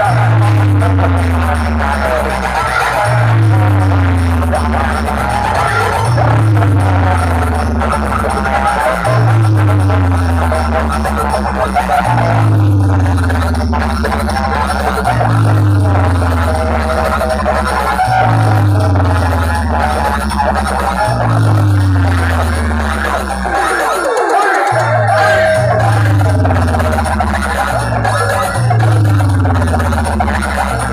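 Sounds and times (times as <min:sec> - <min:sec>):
deep sliding bass tone: 0:00.0 - 0:23.7, 0:24.8 - 0:30.9
loud music from speakers: 0:00.0 - 0:30.9.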